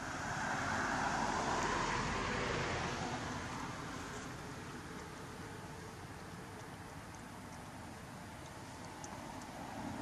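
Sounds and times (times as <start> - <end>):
distant traffic rush: 0.0 - 10.0.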